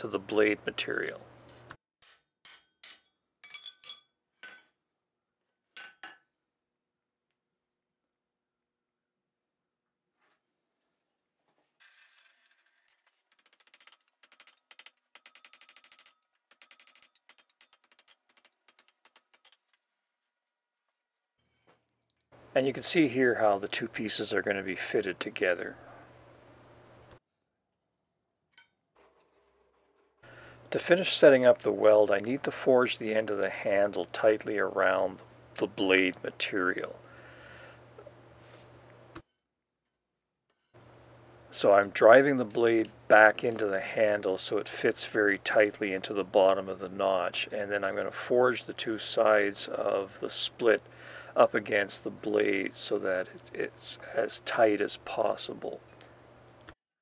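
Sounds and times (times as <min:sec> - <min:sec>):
hammer striking iron on anvil: 0:02.0 - 0:04.7, 0:05.8 - 0:06.2.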